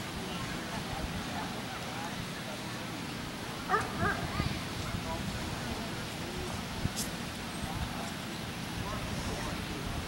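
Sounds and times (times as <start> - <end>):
outdoor crowd murmur: 0.0 - 10.0
dog barking: 3.7 - 4.3.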